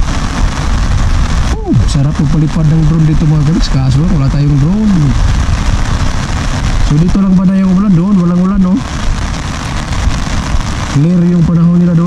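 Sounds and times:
low rumble: 0:00.0 - 0:12.0
rain on an umbrella: 0:00.0 - 0:12.0.

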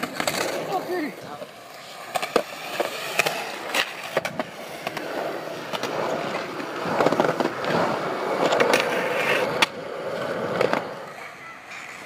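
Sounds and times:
skateboard clacks and knocks: 0:00.0 - 0:00.8
skateboard wheels rolling on concrete: 0:00.0 - 0:12.0.

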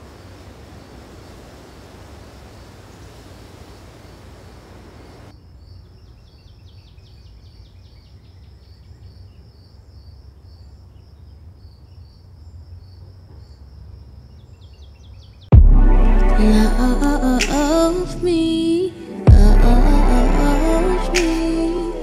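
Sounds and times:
crickets chirping: 0:00.0 - 0:15.3
steady low rumble: 0:15.5 - 0:18.7, 0:19.3 - 0:22.0.

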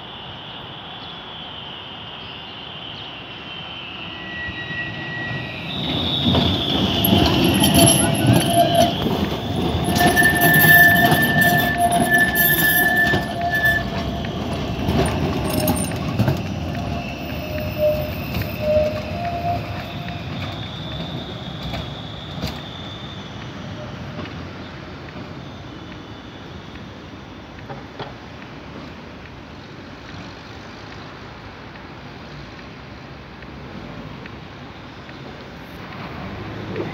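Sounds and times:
tram wheels squealing on rails: 0:00.0 - 0:36.9
tram running gear rumble: 0:04.2 - 0:26.2.

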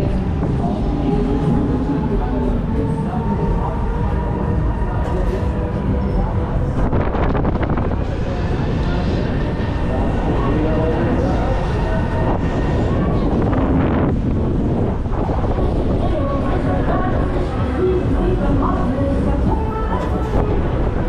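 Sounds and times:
wind rushing on microphone: 0:00.0 - 0:21.0.

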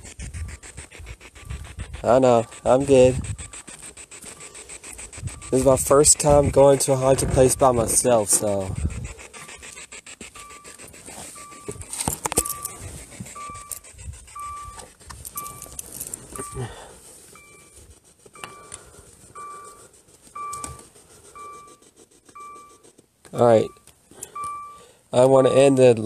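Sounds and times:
short electronic beeps: 0:10.4 - 0:14.8, 0:15.4 - 0:15.8, 0:16.4 - 0:16.7, 0:17.4 - 0:17.8, 0:18.4 - 0:18.8, 0:19.4 - 0:19.8, 0:20.4 - 0:21.8, 0:22.4 - 0:24.9.

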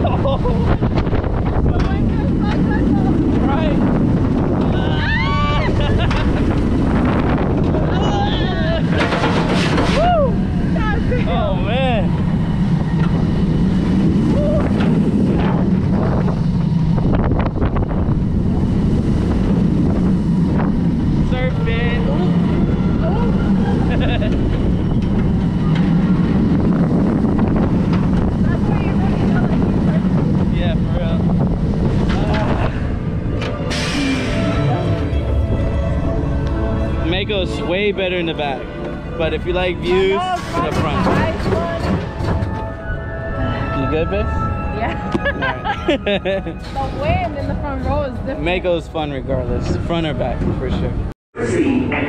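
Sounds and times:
roller coaster wheels rumbling: 0:00.0 - 0:52.0
wind rushing over microphone: 0:00.0 - 0:52.0.

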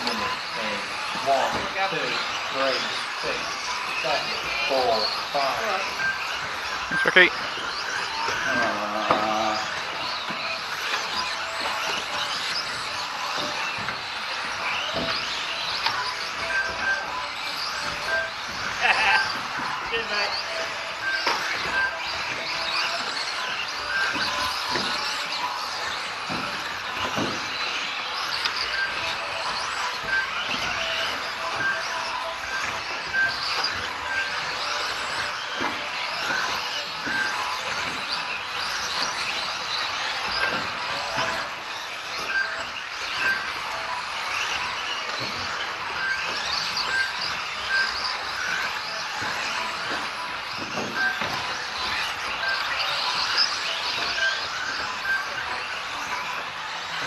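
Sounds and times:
high-pitched whine of small motors: 0:00.0 - 0:57.0.

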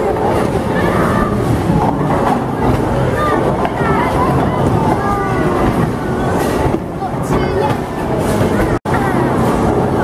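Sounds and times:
bowling balls rolling on lanes: 0:00.0 - 0:10.0.

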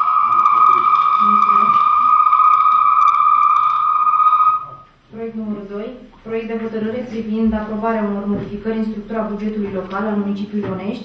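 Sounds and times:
high-pitched electronic tone: 0:00.0 - 0:05.0.

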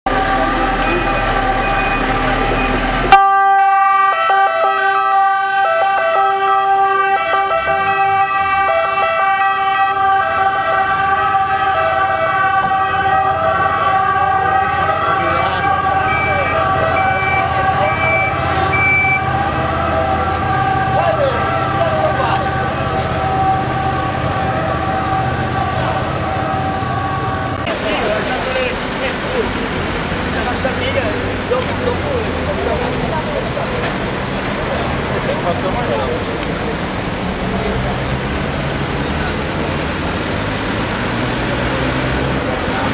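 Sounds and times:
people talking: 0:00.1 - 0:03.1, 0:13.7 - 0:18.9, 0:20.1 - 0:23.7, 0:27.6 - 0:40.2, 0:42.4 - 0:42.9
steady siren-like tone: 0:00.1 - 0:28.7.

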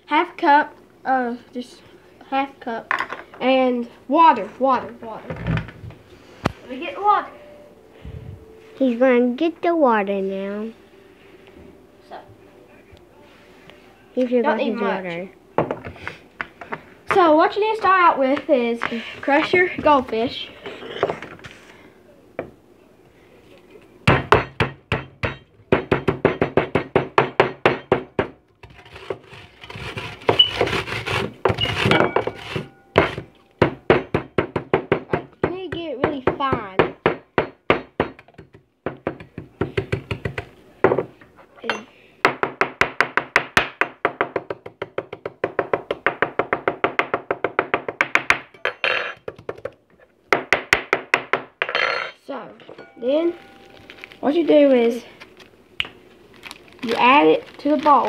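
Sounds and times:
crackers pounded in plastic bag: 0:55.8 - 0:58.0.

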